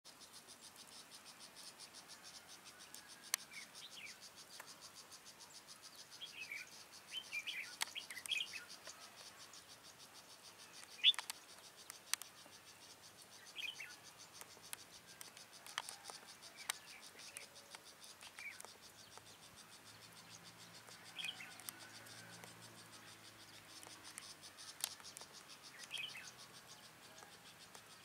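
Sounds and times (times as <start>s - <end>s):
high insect chirping: 0.1s - 28.0s
bulbul calls: 5.9s - 28.0s
sharp clicks: 10.8s - 12.4s, 14.4s - 19.3s, 20.8s - 22.6s, 23.2s - 26.2s.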